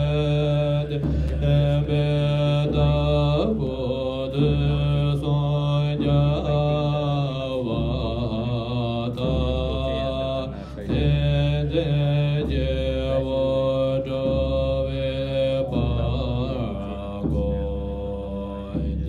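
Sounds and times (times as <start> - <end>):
monks chanting: 0.0 - 19.0.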